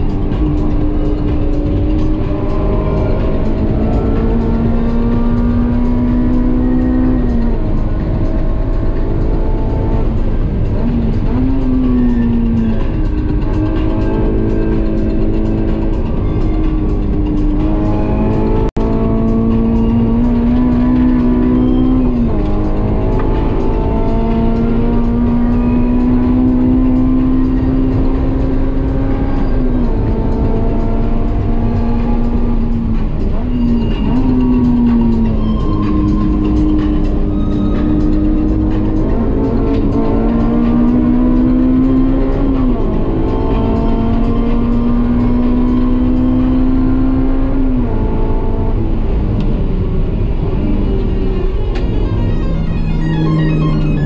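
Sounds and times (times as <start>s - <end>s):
car engine at high revs: 0.0s - 54.0s
tyre and road noise: 0.0s - 54.0s.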